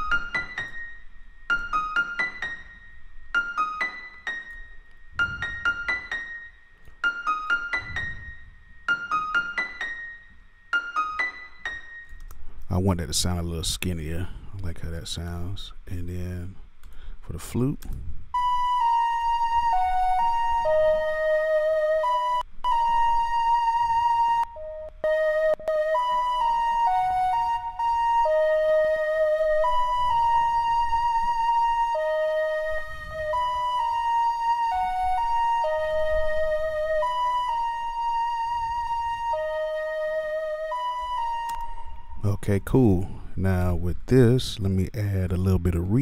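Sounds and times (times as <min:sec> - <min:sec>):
flute melody with vibrato: 0:00.0 - 0:04.2, 0:18.4 - 0:42.4.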